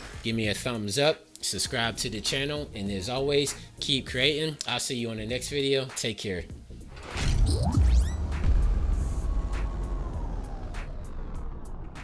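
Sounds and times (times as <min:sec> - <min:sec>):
deep rumble: 0:07.2 - 0:12.0.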